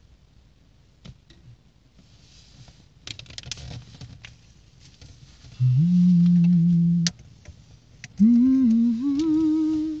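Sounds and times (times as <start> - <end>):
person humming: 5.6 - 7.1, 8.2 - 10.0.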